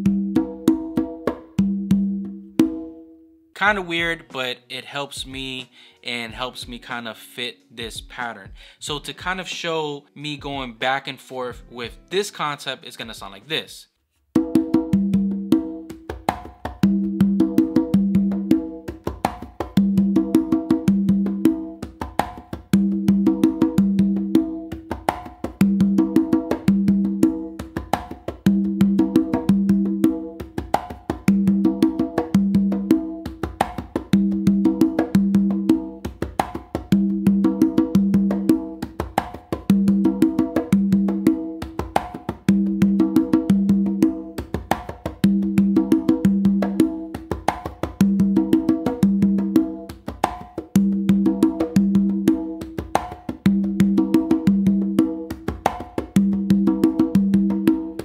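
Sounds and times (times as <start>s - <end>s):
congas played with bare hands: 0.0s - 4.4s, 8.1s - 9.8s, 14.3s - 58.0s.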